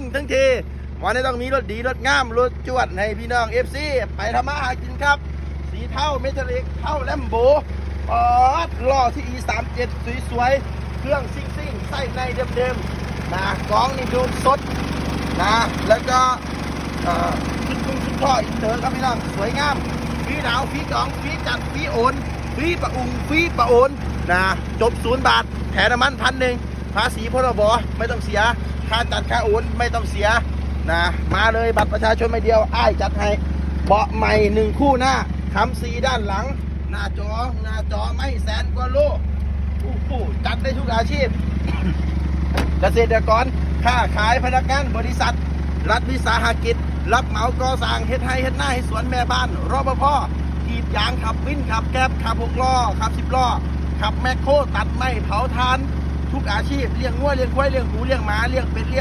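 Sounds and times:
man speaking: 0.0s - 42.1s, 42.8s - 59.0s
diesel engine idling: 0.0s - 59.0s.

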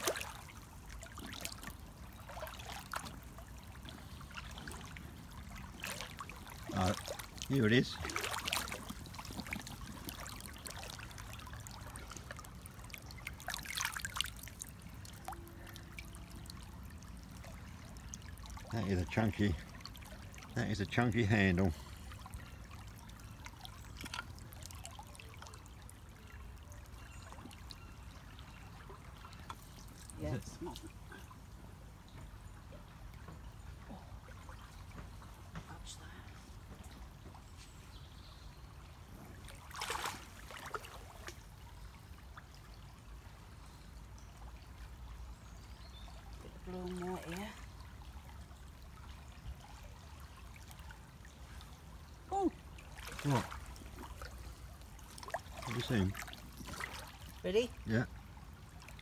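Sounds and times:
river water trickling over pebbles: 0.0s - 59.0s.

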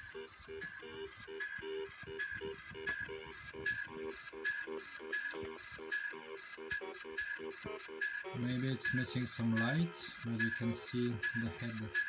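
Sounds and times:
disk drive head ticking: 0.0s - 12.0s.

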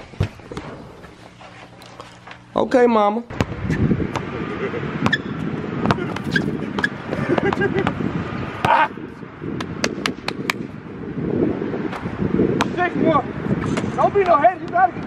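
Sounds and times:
wind rumbling on microphone: 3.3s - 15.0s
basketball bouncing on court: 5.0s - 8.0s
person shouting: 8.6s - 9.0s.

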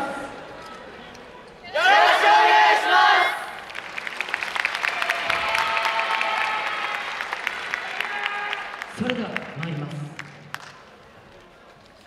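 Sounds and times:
group shouting together: 1.7s - 3.5s
audience applause: 3.6s - 10.9s
audience cheering: 4.0s - 9.1s.

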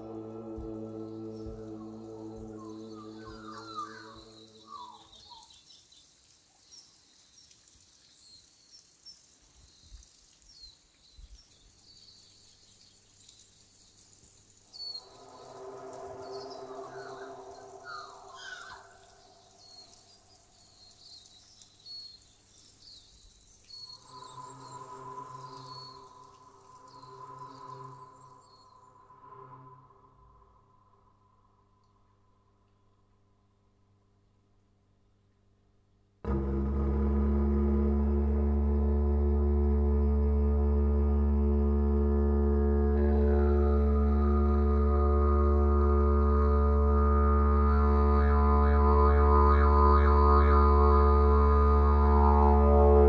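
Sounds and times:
didgeridoo drone: 0.0s - 4.8s, 15.0s - 19.1s, 24.0s - 30.3s, 36.3s - 53.0s
faint high chirps: 14.8s - 22.3s.

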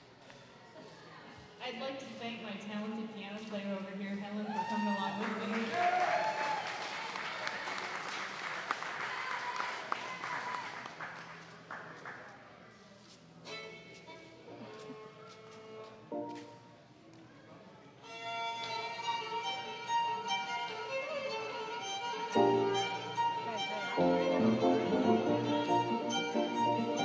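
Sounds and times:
fiddle and piano tune: 18.0s - 27.0s.

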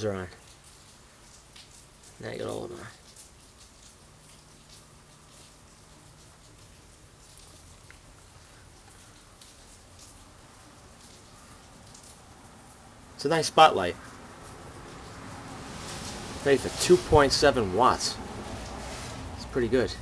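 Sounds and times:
light crackles: 0.0s - 20.0s
steady hiss: 0.0s - 20.0s.

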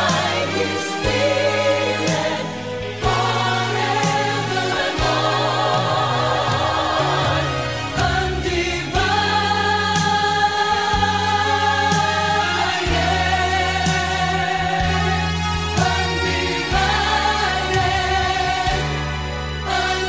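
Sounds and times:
pop band with bass: 0.0s - 20.0s
vocal group singing in harmony: 0.0s - 20.0s.

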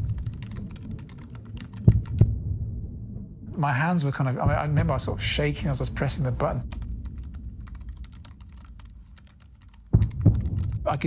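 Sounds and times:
computer keyboard typing: 0.0s - 2.2s, 6.7s - 10.9s
low hum: 0.0s - 11.0s.

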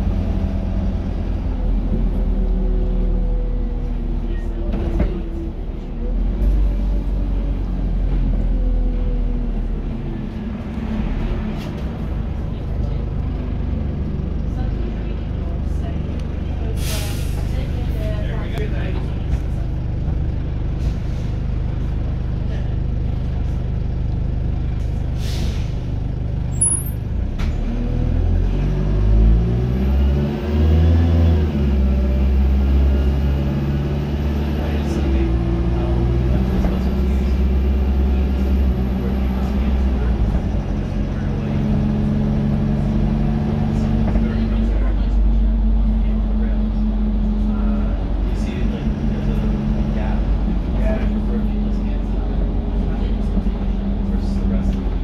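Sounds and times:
bus diesel engine: 0.0s - 55.0s
air brake hiss: 16.8s - 17.5s, 25.2s - 25.8s.

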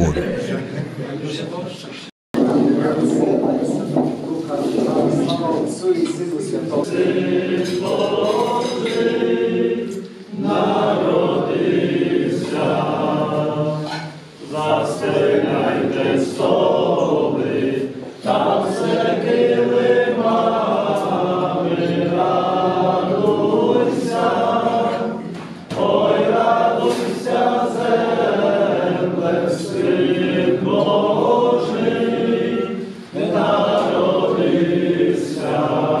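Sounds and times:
choir singing a carol: 6.4s - 36.0s.

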